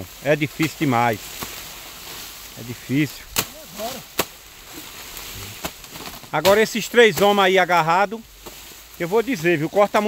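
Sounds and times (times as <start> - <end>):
machete chopping sugarcane: 0.6 - 1.7, 3.2 - 5.0, 5.6 - 7.6, 8.4 - 8.7.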